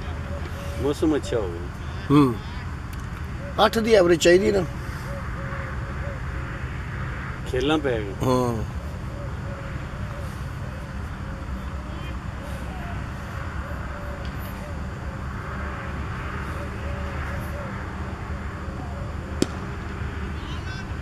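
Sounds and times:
low outdoor rumble: 0:00.0 - 0:21.0
cricket bat striking ball: 0:19.4 - 0:19.8.

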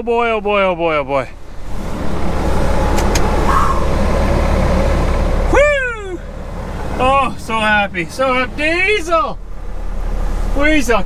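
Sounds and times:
diesel truck engine idling: 0:00.0 - 0:11.0
light clicks: 0:02.9 - 0:03.3
man exclaiming: 0:05.5 - 0:06.3.

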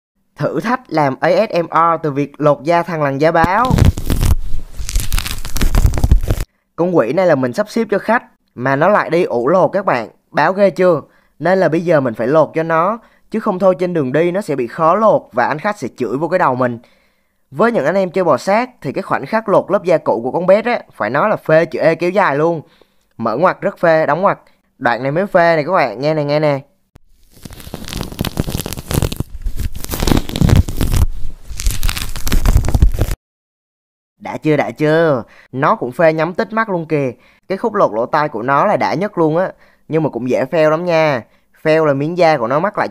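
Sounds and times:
tearing and crinkling crackles: 0:03.4 - 0:06.5, 0:27.1 - 0:33.2.

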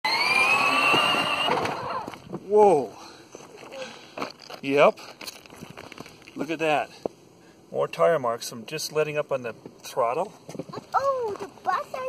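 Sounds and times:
plastic wheels squealing on concrete: 0:00.1 - 0:02.2.

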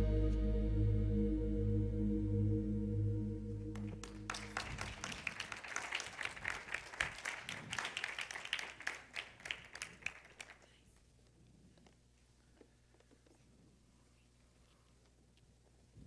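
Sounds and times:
audience applause: 0:03.7 - 0:10.8.

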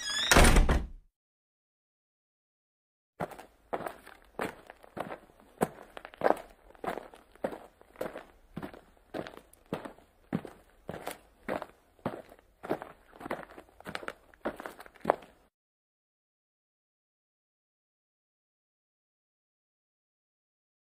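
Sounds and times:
footsteps walking: 0:03.2 - 0:15.5.

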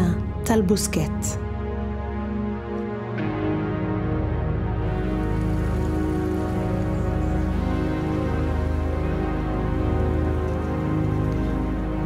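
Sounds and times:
slow film score with held tones: 0:00.0 - 0:12.0.

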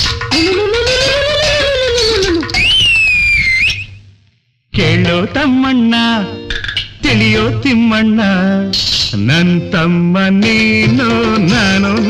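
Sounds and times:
man singing: 0:00.3 - 0:02.5, 0:04.7 - 0:12.0
high whistle-like note: 0:02.5 - 0:04.0.

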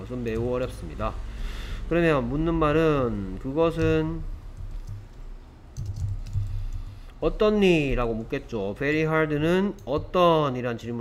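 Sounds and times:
computer keyboard typing: 0:03.7 - 0:07.2.

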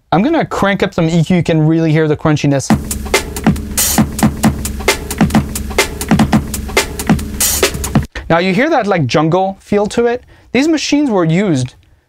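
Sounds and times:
gritty sampled drum break: 0:02.7 - 0:08.4.

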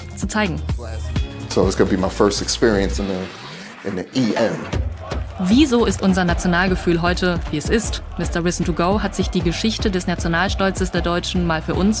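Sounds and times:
faint background music: 0:00.0 - 0:12.0
man speaking: 0:00.8 - 0:04.8.

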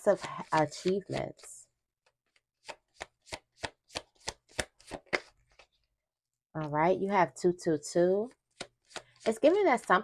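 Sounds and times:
cards being shuffled: 0:00.5 - 0:01.5, 0:02.3 - 0:05.9, 0:08.5 - 0:09.6.

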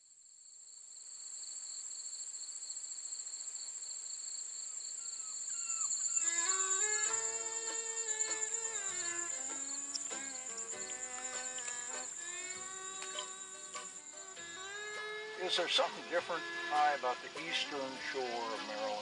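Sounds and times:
insect chorus: 0:00.0 - 0:19.0
music with held notes: 0:06.2 - 0:19.0.

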